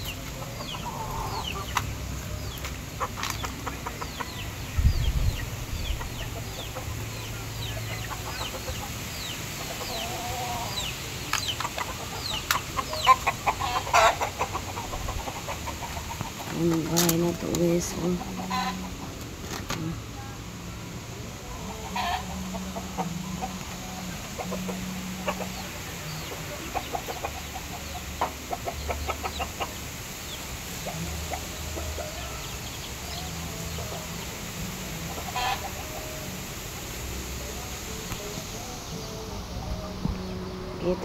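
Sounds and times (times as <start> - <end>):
chickens clucking: 0.0 - 41.0.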